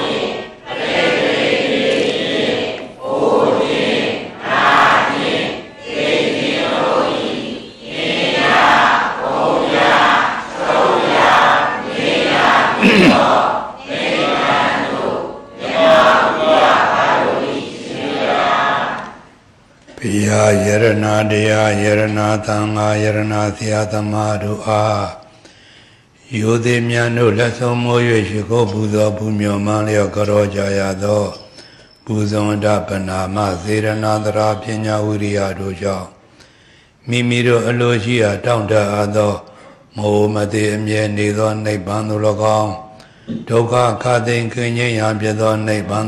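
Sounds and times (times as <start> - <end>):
man chanting in monotone: 12.8 - 13.4, 20.0 - 25.3, 26.2 - 36.2, 37.0 - 46.0.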